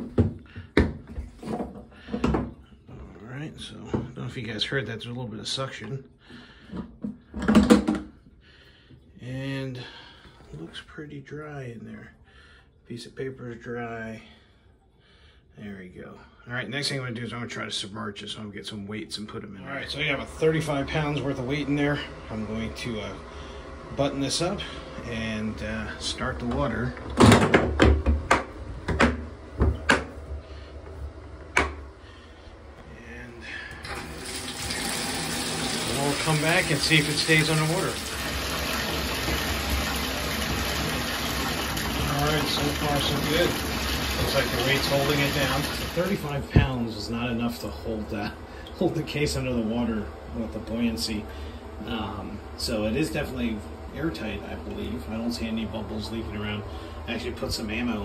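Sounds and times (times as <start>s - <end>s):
water running into bathtub: 33.7s - 47.5s.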